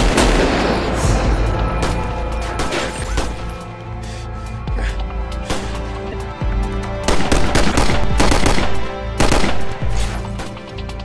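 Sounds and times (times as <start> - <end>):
background music with held notes: 0.0 - 11.0
rapid automatic gunfire: 7.1 - 9.6.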